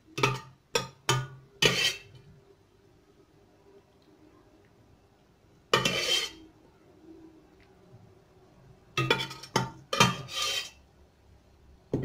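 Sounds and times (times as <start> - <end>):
spoon scraping: 1.6 - 2.3, 5.7 - 6.5, 9.0 - 10.8.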